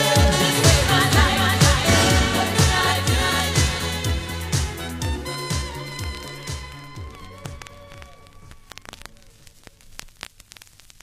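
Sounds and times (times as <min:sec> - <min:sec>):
vinyl hiss and crackle: 0:04.5 - 0:11.0.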